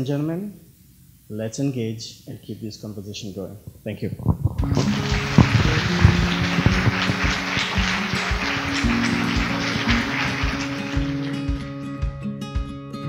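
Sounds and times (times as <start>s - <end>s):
audience applause: 4.4s - 11.8s
outro music with steady beat: 4.6s - 12.9s.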